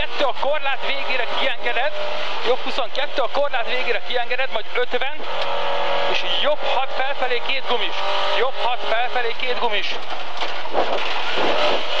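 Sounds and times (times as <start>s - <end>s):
rally car engine running hard: 0.0s - 12.0s
road and tyre noise: 0.0s - 12.0s.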